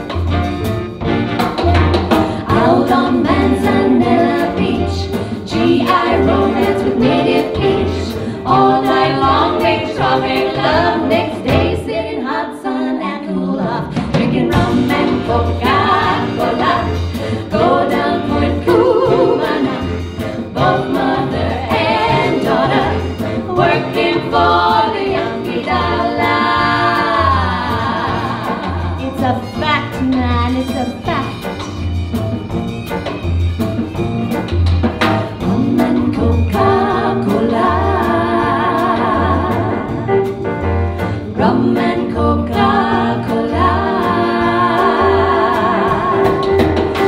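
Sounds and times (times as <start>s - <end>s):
big band playing swing: 0.0s - 12.6s, 13.2s - 47.0s
women singing together: 2.4s - 29.0s, 35.4s - 40.1s, 41.3s - 47.0s
bass line: 14.4s - 47.0s.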